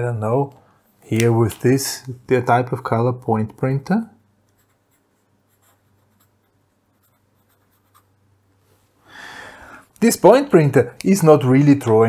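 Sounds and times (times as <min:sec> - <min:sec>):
pen scratching on paper: 0:04.6 - 0:08.1.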